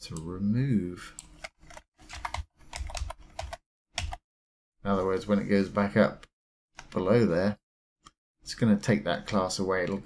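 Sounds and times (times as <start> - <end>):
computer keyboard typing: 1.4 - 4.2.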